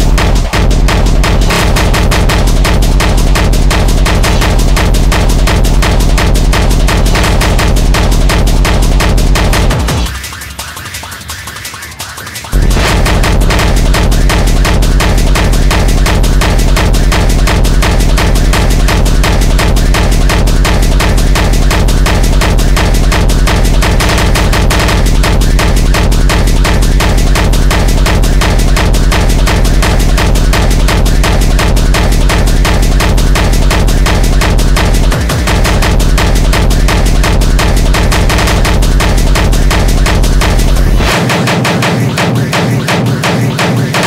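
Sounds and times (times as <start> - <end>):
heavy bass kick: 0.0 - 10.3, 12.5 - 44.0
hardcore techno music: 0.0 - 44.0
rapid sharp percussive hits: 0.0 - 44.0.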